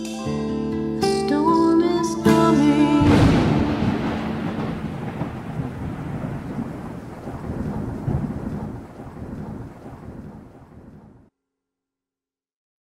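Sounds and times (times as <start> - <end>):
thunder rumbling: 3.0 - 11.3
steady rain: 3.1 - 11.3.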